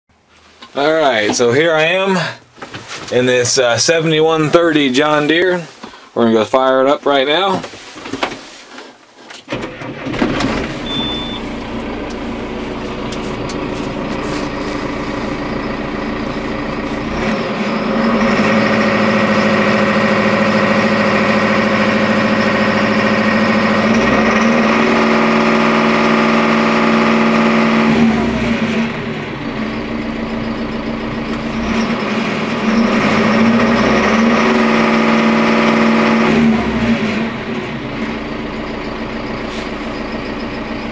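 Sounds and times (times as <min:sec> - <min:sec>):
tractor diesel engine starting: 0:03.1 - 0:05.7, 0:09.3 - 0:40.9
tractor engine revving: 0:09.5 - 0:40.9
tractor engine idling: 0:09.6 - 0:40.9.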